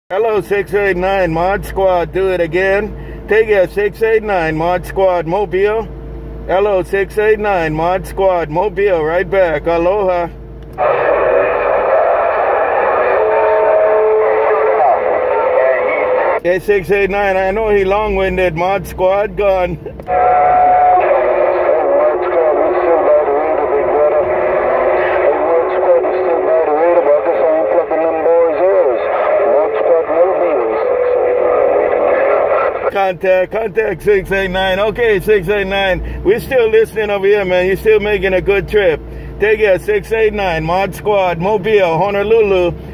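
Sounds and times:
radio static hiss: 0:10.8 - 0:16.4, 0:20.1 - 0:33.0.

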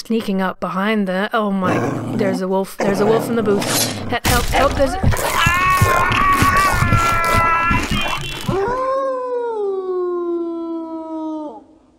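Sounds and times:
wolf howl: 0:05.2 - 0:11.8
high held scream: 0:05.3 - 0:08.9.

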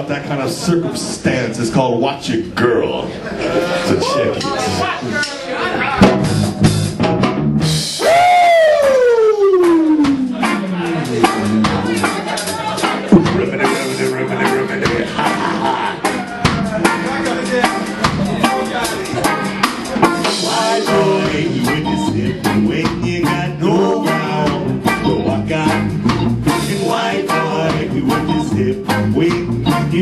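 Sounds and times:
ska band playing: 0:03.3 - 0:30.0
drum kit beat: 0:05.2 - 0:30.0.

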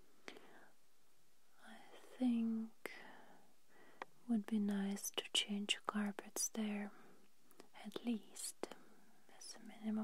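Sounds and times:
soft whispering: 0:01.5 - 0:10.0
faint sharp click: 0:04.0 - 0:04.2.

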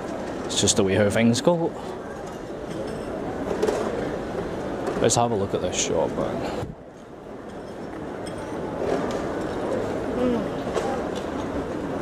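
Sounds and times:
rumbling hum of terminal hall: 0:00.0 - 0:12.0.

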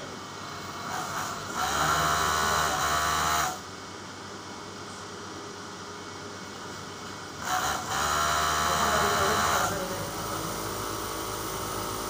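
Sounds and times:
sewing machine running: 0:00.4 - 0:03.6, 0:07.4 - 0:12.0.

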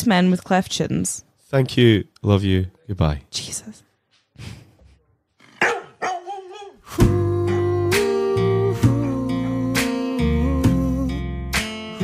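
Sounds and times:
sharp bark-like call: 0:05.5 - 0:06.8.

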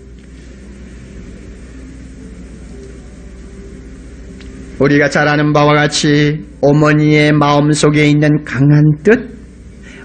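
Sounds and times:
low hum: 0:00.0 - 0:10.0
recording hiss: 0:00.0 - 0:10.0.

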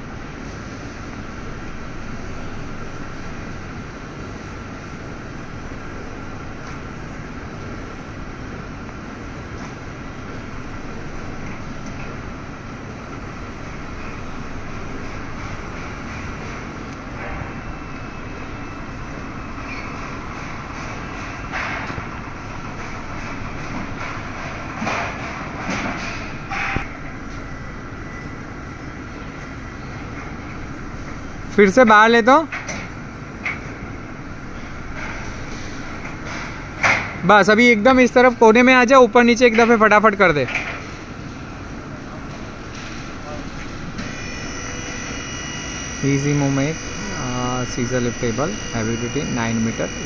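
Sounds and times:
hydraulic pump whine: 0:00.0 - 0:50.0
steady background noise: 0:00.0 - 0:50.0
scissor lift lowering: 0:42.3 - 0:50.0.

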